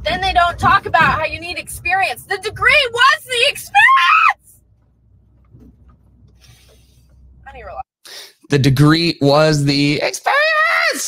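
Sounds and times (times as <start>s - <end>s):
woman speaking: 0.0s - 4.6s, 7.5s - 7.9s
car interior rumble: 0.0s - 7.9s.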